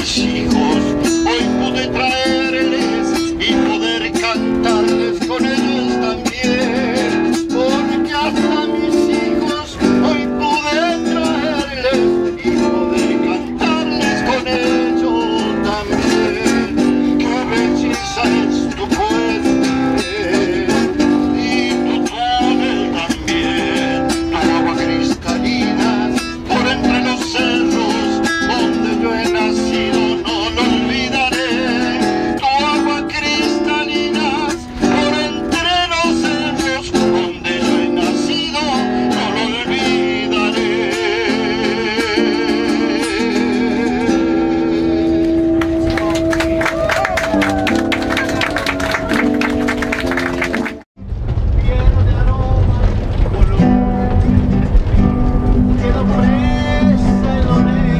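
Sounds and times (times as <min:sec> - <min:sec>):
man singing folk song: 0:00.0 - 0:46.4, 0:51.4 - 0:57.9
acoustic guitar strumming: 0:00.0 - 0:57.9.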